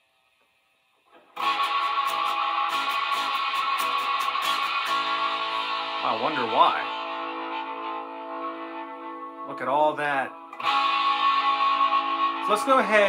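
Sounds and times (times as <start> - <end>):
electric guitar strumming chords: 1.2 - 13.0.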